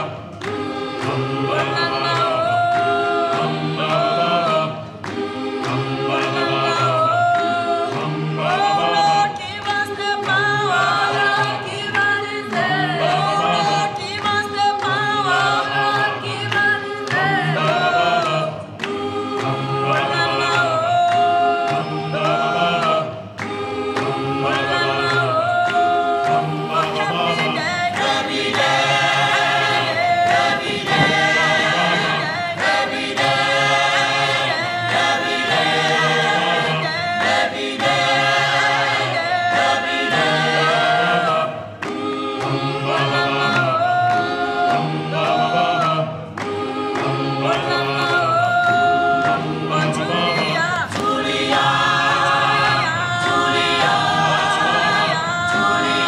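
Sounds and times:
choir singing in harmony: 0.0s - 56.0s.

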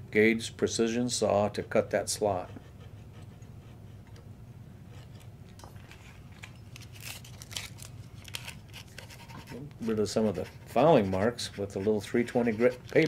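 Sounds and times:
razor saw rasping strokes: 9.2s - 13.0s.

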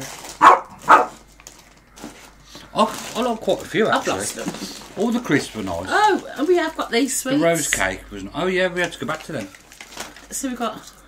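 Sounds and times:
dog barking: 0.4s - 1.2s.

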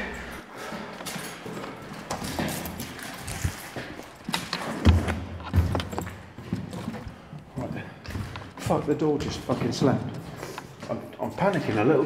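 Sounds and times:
hurried footsteps: 0.0s - 12.0s
handheld camera bumps: 4.2s - 6.3s.

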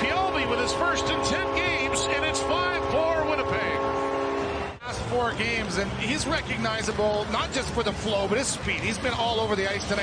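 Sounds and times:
goal horn blast: 0.0s - 4.8s.

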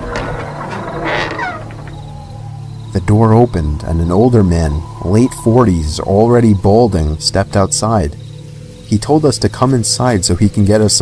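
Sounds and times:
door creaking on hinges: 0.0s - 4.7s
low steady drone: 0.0s - 11.0s.

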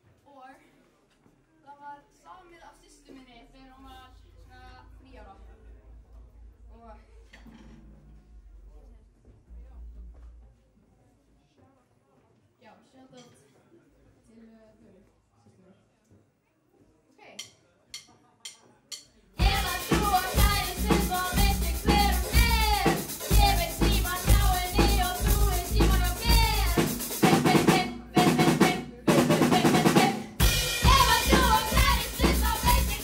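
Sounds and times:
rock band playing: 19.4s - 33.0s.

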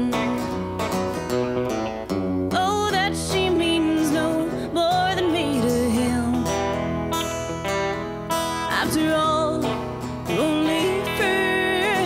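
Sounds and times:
strummed acoustic guitar: 0.0s - 12.0s
woman singing country song: 0.0s - 12.0s.

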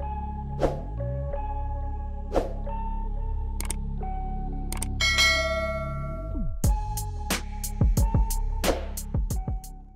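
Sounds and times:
background music with low notes: 0.0s - 9.9s.

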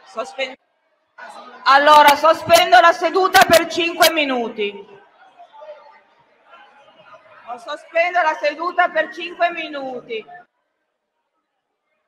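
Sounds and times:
faint chatter of voices: 4.7s - 8.4s.

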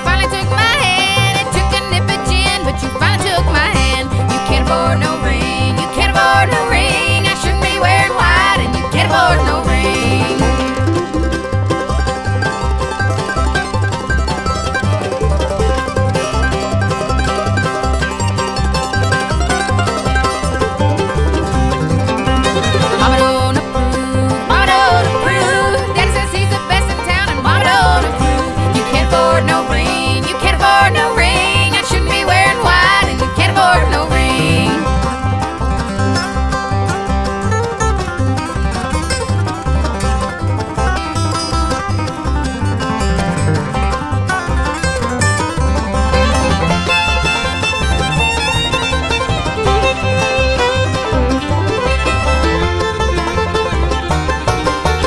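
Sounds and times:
banjo picking: 0.0s - 55.0s
sliding lead line: 0.5s - 55.0s
quick bass beat: 2.3s - 55.0s.

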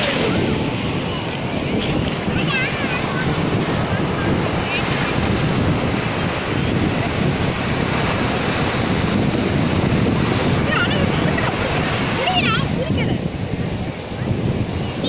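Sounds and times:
waves breaking on beach: 0.0s - 15.0s
wind buffeting microphone: 0.0s - 15.0s.

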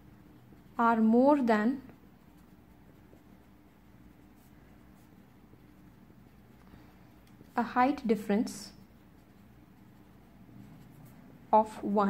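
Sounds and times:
marker scratching on paper: 0.0s - 12.0s.

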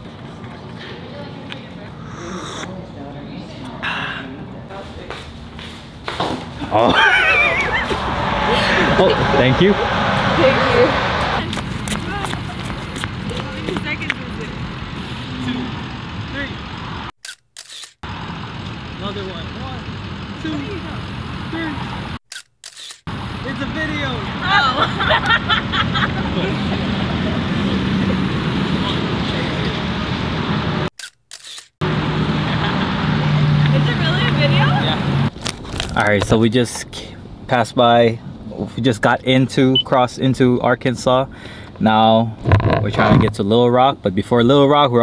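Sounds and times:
road traffic noise: 0.0s - 44.6s
low voices: 0.4s - 5.2s, 6.6s - 14.6s
woman laughing high-pitched: 6.7s - 9.4s.

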